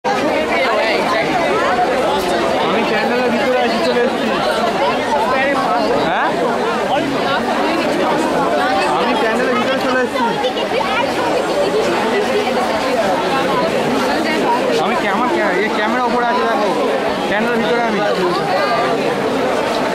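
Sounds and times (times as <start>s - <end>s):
crowd chatter: 0.0s - 19.9s.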